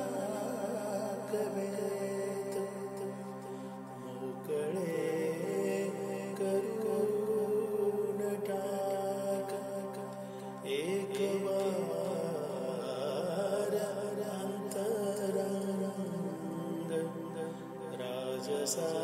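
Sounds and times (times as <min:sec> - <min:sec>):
person singing slow melody: 0:00.0 - 0:19.0.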